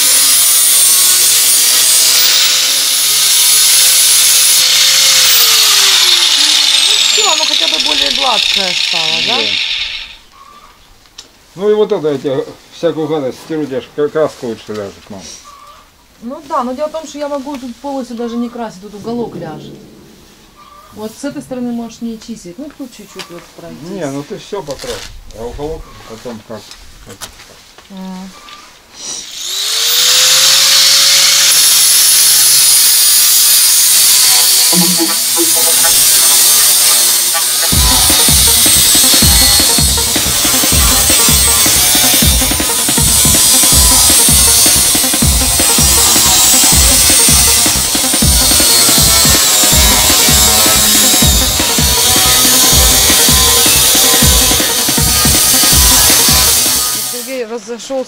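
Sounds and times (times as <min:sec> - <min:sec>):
angle grinder stripping paint: 0:00.0 - 0:10.3, 0:29.1 - 0:57.4
music with a steady beat: 0:34.8 - 0:57.0.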